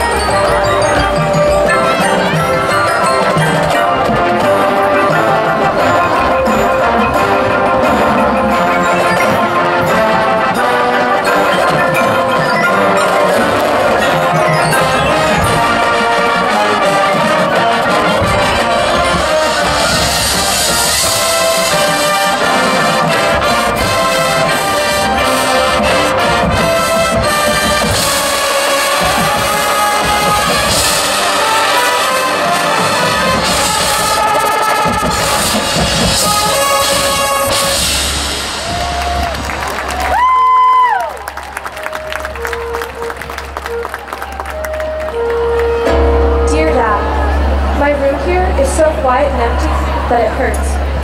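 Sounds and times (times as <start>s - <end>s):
marimba and glockenspiel: 0.0s - 34.2s, 41.9s - 48.9s
marching band brass: 0.0s - 51.0s
bright high wash: 45.7s - 49.1s.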